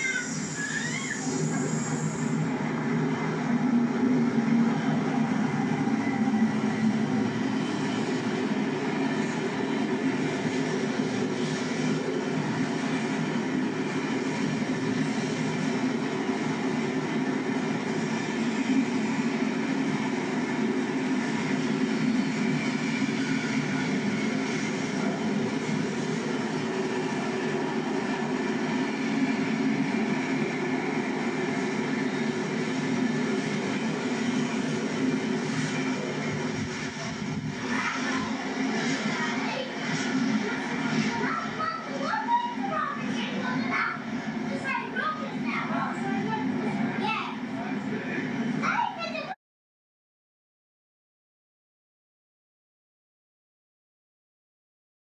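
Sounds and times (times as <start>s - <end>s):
diesel locomotive engine: 0.0s - 49.4s
train wheels on rail: 0.0s - 49.4s.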